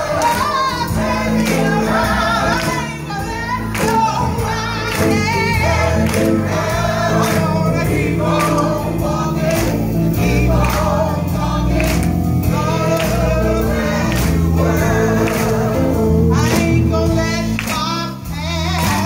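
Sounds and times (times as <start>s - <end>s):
gospel choir singing with band: 0.0s - 19.0s.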